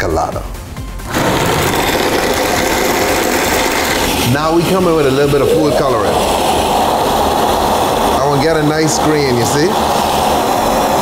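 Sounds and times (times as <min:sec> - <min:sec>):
blender crushing ice: 0:01.0 - 0:04.7.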